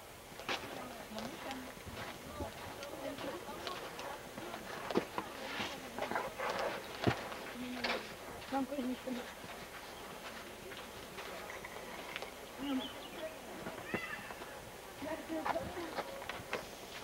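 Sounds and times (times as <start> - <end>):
faint voices talking: 0.5 - 17.0.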